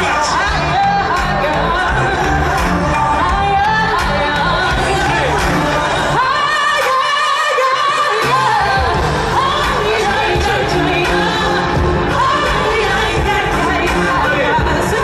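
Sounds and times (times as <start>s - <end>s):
live pop music over pa: 0.0s - 15.0s
person singing: 0.0s - 15.0s.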